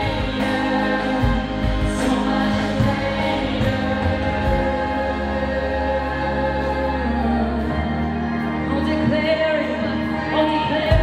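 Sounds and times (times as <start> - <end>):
acoustic guitar: 0.0 - 8.9
band accompaniment: 0.0 - 11.0
women singing: 0.0 - 11.0.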